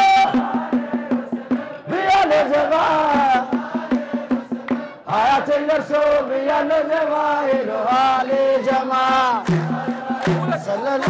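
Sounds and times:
men chanting together: 0.1 - 11.0.

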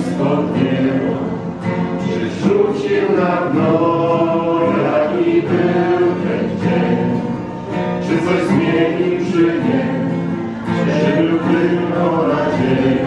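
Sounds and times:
voices singing religious song: 0.0 - 13.0.

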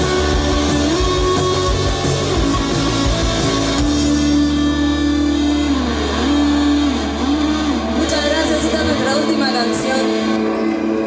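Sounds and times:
electric guitar note bending: 0.0 - 11.0.

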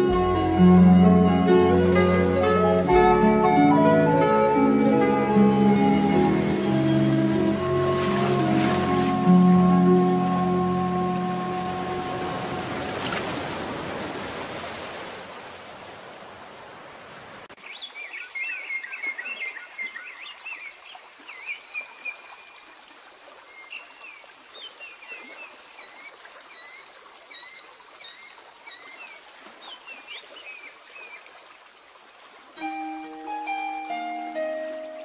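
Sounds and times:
trickling stream: 0.0 - 35.0.

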